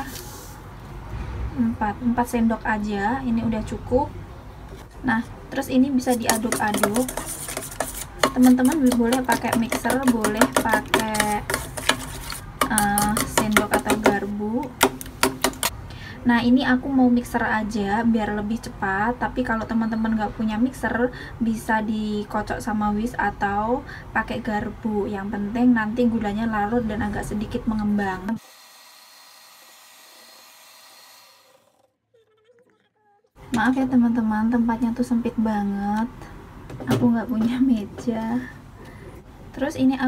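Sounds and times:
electric hand mixer running: 28.4 - 31.8.

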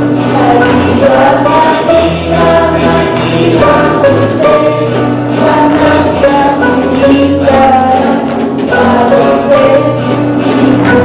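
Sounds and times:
group of voices singing: 0.0 - 11.0
guitar: 0.0 - 11.0
violin: 0.0 - 11.0.

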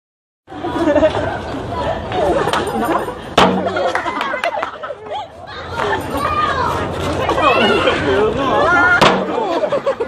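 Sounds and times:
people talking over one another: 0.5 - 10.0.

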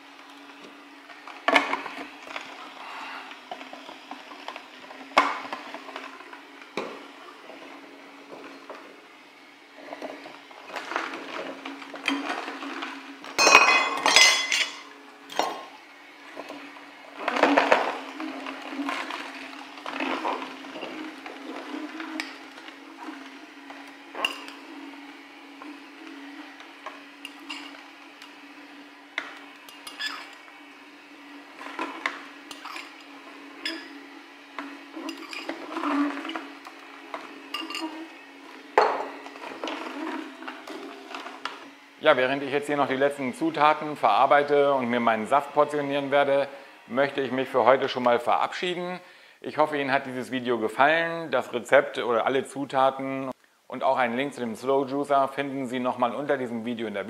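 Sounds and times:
juicer motor humming: 0.0 - 53.3, 54.0 - 57.0
bowls and spoon clattering: 13.4 - 15.6, 37.5 - 37.9.

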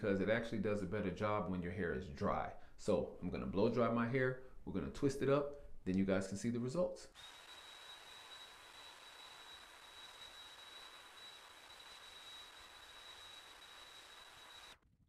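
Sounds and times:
hair dryer brush blowing: 7.2 - 14.8.

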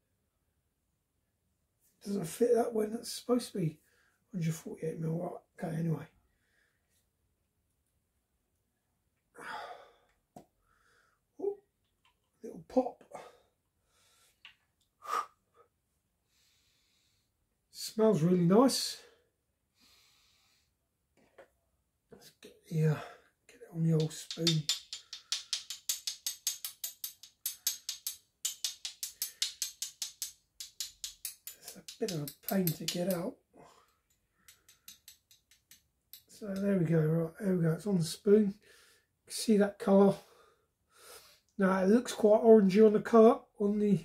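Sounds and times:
faint breaths: 16.3 - 17.4, 19.0 - 20.8.

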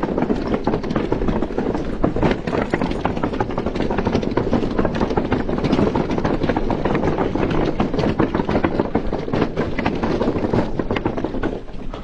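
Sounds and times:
bike and deck rattling: 0.0 - 12.0
bike tyres clattering over planks: 0.0 - 12.0.

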